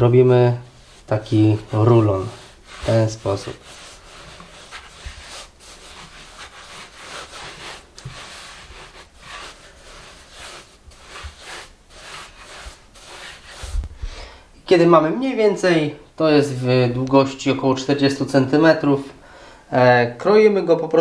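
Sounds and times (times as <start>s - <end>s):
hands rolling dough on wood: 0.0s - 14.1s.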